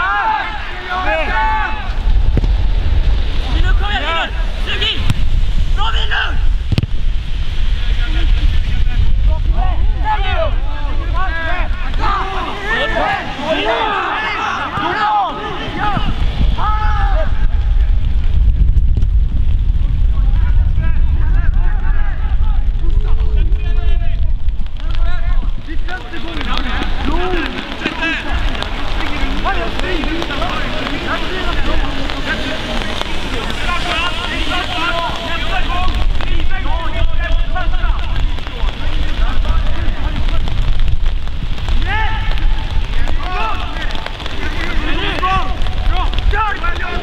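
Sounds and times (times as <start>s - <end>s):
players calling and shouting: 0.0s - 2.4s, 3.2s - 6.7s, 7.8s - 17.8s, 20.6s - 40.7s, 41.6s - 47.0s
wind rumble on microphone: 0.0s - 47.0s.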